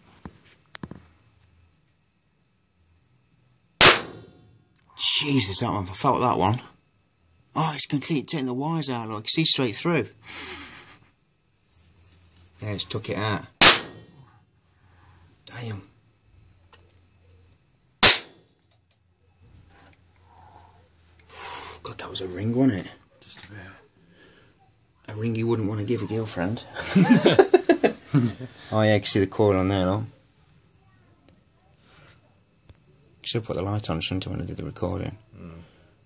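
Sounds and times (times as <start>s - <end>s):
loud capacitor discharge bang: 3.8s - 4.5s, 13.6s - 14.2s, 18.0s - 18.4s.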